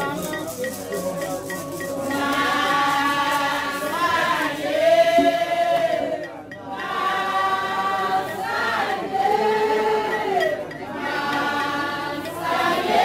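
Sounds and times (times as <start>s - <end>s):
group of voices chanting: 2.1s - 13.0s.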